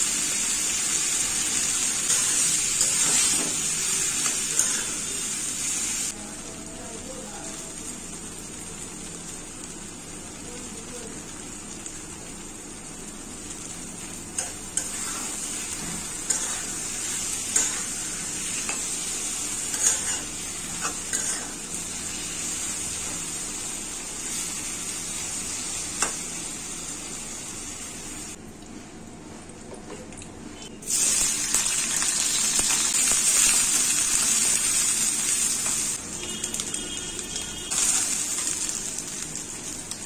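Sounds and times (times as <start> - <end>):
beans sizzling in a wok: 0.0 - 28.4, 30.8 - 40.0.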